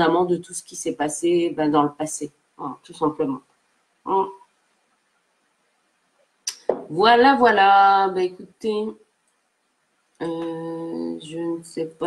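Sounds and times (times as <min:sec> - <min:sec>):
woman speaking: 0:00.0 - 0:03.4, 0:04.1 - 0:04.4, 0:06.5 - 0:09.0, 0:10.2 - 0:12.0.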